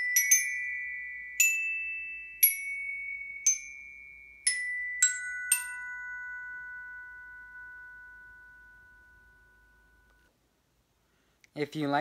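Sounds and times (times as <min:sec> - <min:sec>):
glockenspiel tones ringing: 0:00.0 - 0:10.3.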